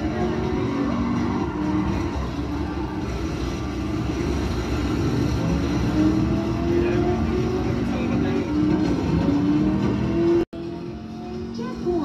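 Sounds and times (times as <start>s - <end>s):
game car engine noise: 0.0s - 12.0s
video game music: 0.0s - 12.0s.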